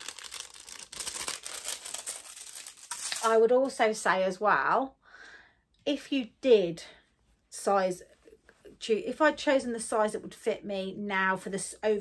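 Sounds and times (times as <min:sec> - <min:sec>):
plastic packet crinkling: 0:00.0 - 0:03.5.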